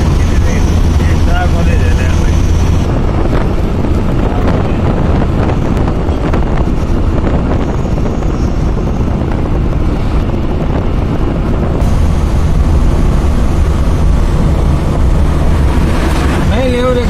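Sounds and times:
engine rumble: 0:00.0 - 0:17.0
road and wind noise: 0:00.0 - 0:17.0.

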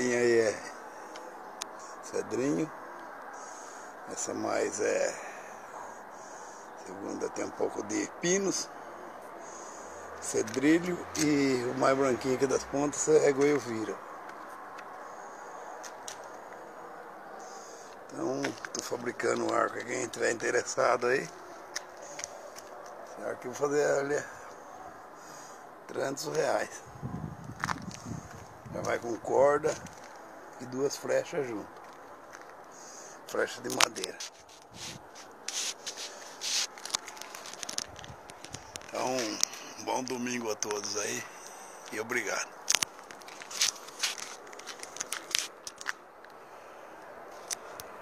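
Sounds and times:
low background noise: 0:00.0 - 0:48.0
fingers rubbing on phone microphone: 0:34.1 - 0:38.9.

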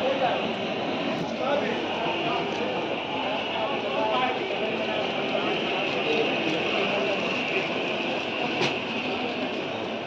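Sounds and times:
busy market din: 0:00.0 - 0:10.0.

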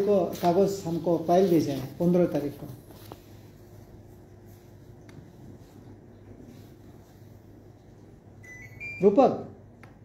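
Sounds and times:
steady low hum: 0:00.0 - 0:10.0
electronic beep: 0:08.4 - 0:09.2.

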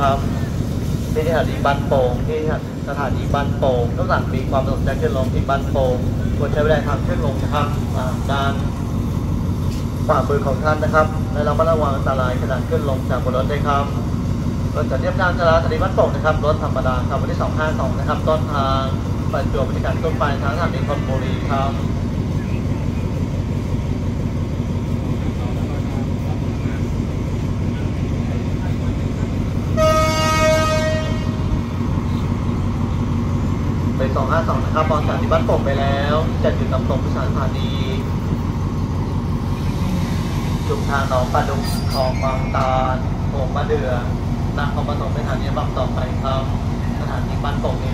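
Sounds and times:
diesel train idling rumble: 0:00.0 - 0:47.9
station announcement: 0:00.0 - 0:47.9
train horn blast: 0:29.7 - 0:31.6.

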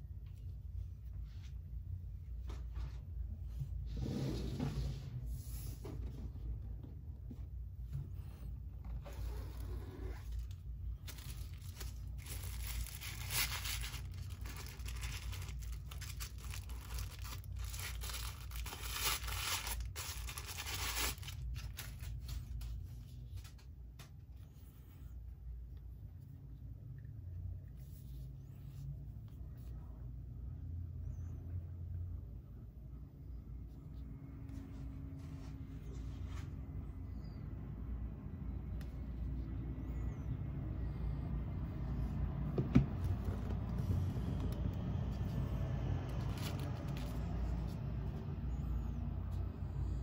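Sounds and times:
steady low rumble: 0:00.0 - 0:50.0.

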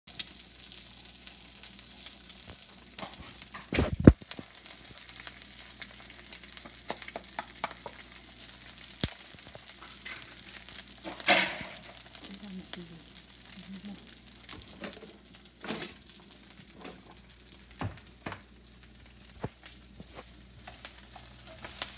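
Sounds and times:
rice and egg sizzling: 0:00.1 - 0:21.9.

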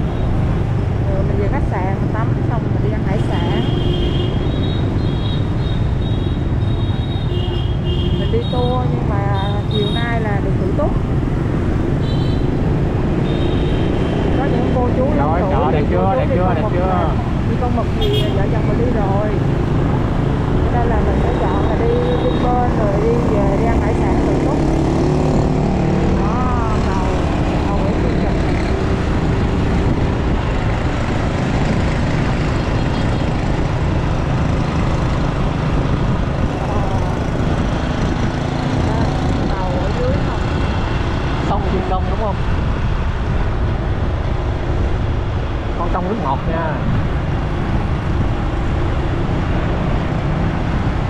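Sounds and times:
passing motorbikes: 0:00.0 - 0:51.0
road and wind noise: 0:00.0 - 0:51.0.

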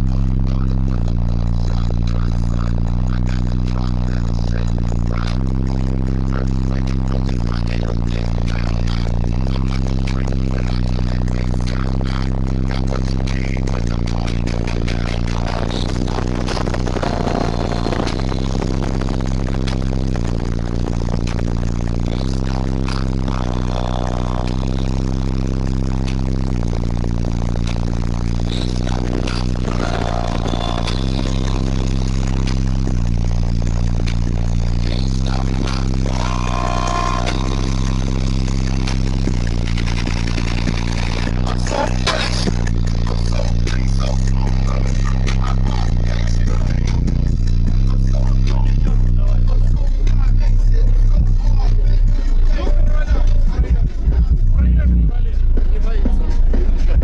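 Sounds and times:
loud bass-heavy music: 0:00.0 - 0:57.0.

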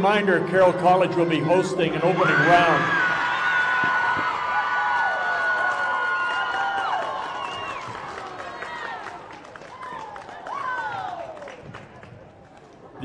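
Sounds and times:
crowd cheering: 0:00.2 - 0:12.5
clapping: 0:04.9 - 0:12.8.

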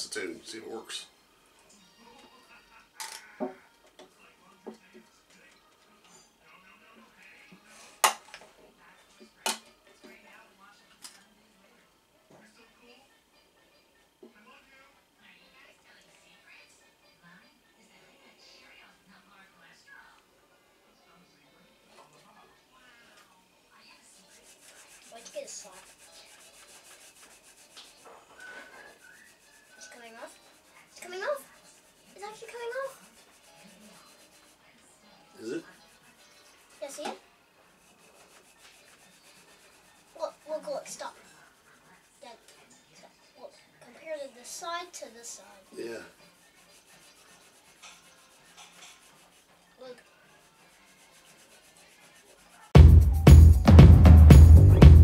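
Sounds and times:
rag rubbing on baseball bat: 0:24.1 - 0:34.7, 0:35.6 - 0:42.5, 0:46.2 - 0:52.8.

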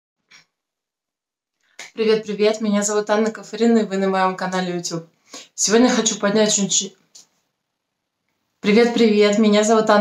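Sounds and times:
woman speaking: 0:01.8 - 0:07.3, 0:08.6 - 0:10.0
faint breath-like hiss: 0:05.1 - 0:05.6.

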